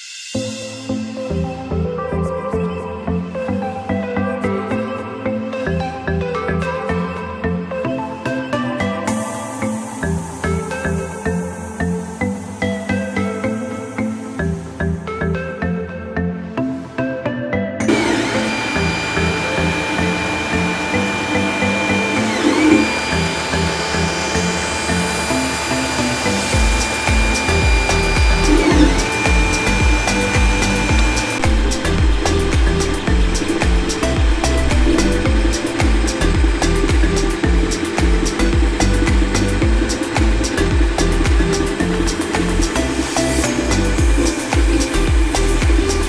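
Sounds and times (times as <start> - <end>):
electronic background music: 0.0 - 46.0
stepper motors whining: 17.9 - 46.0.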